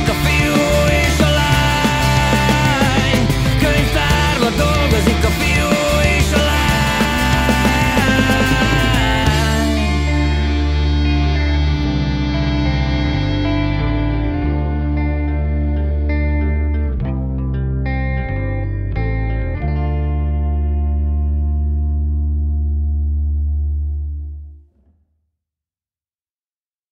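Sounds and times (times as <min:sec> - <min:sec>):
heavy bass: 0:00.0 - 0:24.6
effects-laden electric guitar: 0:00.0 - 0:24.8.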